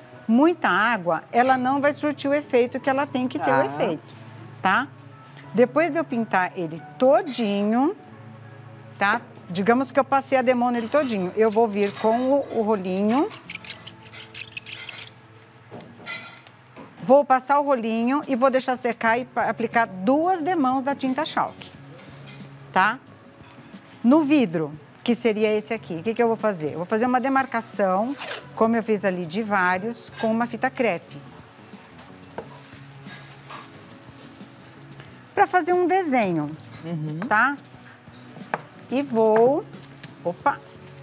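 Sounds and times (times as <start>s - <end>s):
faint background music: 0.0s - 41.0s.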